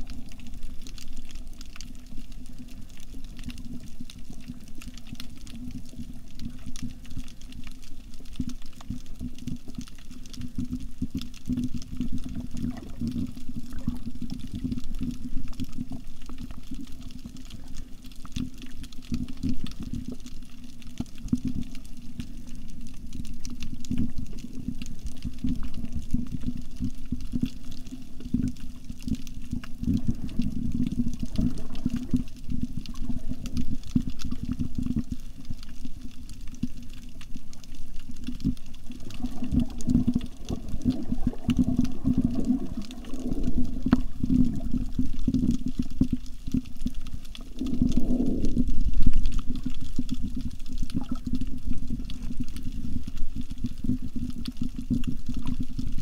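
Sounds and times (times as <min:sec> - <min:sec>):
muffled underwater rumble: 0:00.0 - 0:56.0.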